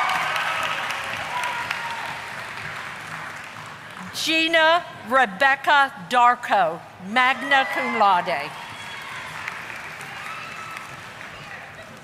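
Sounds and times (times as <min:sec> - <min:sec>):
audience applause: 0:00.0 - 0:04.2, 0:07.8 - 0:12.0.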